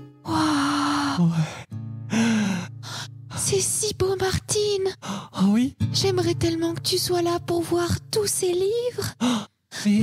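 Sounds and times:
person gasping and sighing: 0.2s - 3.3s, 5.0s - 5.4s, 9.1s - 10.0s.

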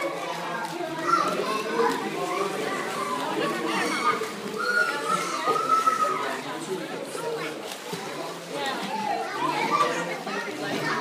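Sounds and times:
children's voices chattering: 0.0s - 11.0s.

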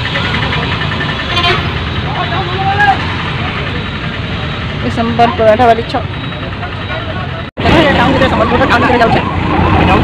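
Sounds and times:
town traffic: 0.0s - 10.0s.

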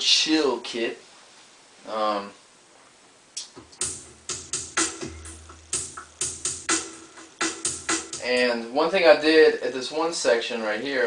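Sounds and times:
electronic drum beat: 3.4s - 8.5s.

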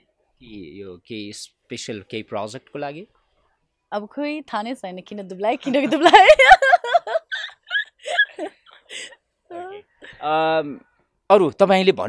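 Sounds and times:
woman laughing: 5.6s - 10.2s.

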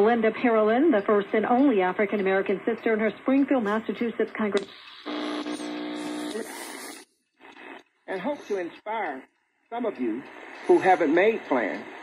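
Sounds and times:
radio static hiss: 4.6s - 9.1s, 9.8s - 12.0s
radio buzzing tone: 4.7s - 7.0s, 10.4s - 11.4s.

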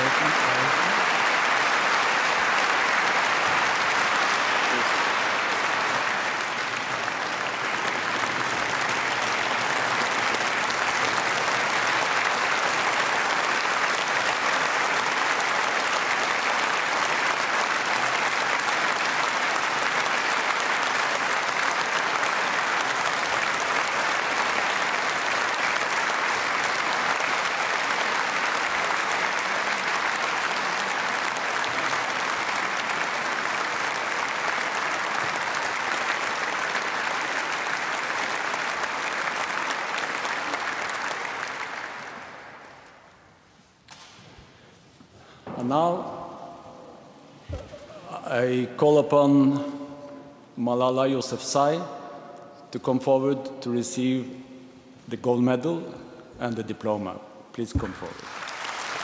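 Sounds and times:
large audience applauding: 0.0s - 44.6s, 57.7s - 59.0s.

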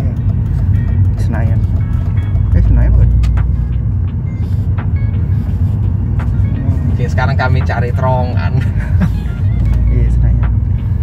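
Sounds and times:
car engine drone: 0.0s - 11.0s
road noise: 0.0s - 11.0s.

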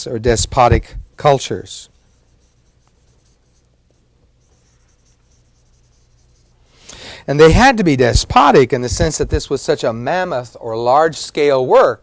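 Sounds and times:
low room hum: 0.0s - 12.0s
writing scratching and ticking: 0.6s - 6.7s.

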